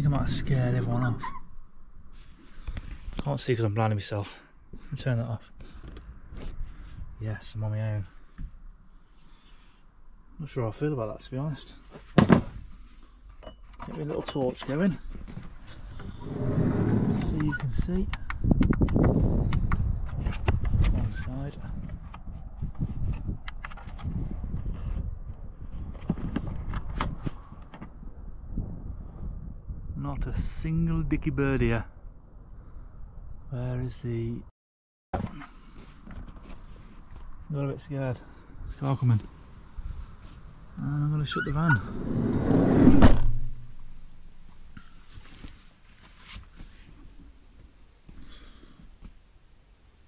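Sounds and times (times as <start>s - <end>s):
low rumble: 38.6s - 45.0s
van door slamming: 42.8s - 43.7s.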